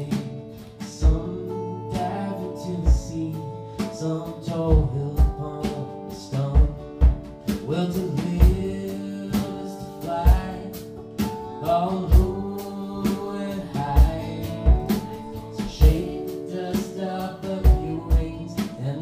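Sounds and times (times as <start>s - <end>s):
man and woman singing: 0.0s - 10.9s, 11.6s - 19.0s
acoustic guitar strumming: 0.0s - 19.0s
kick drum thumping: 1.0s - 1.3s, 2.9s - 3.2s, 4.7s - 5.5s, 6.6s - 7.5s, 8.3s - 8.8s, 13.9s - 16.2s, 17.6s - 18.5s.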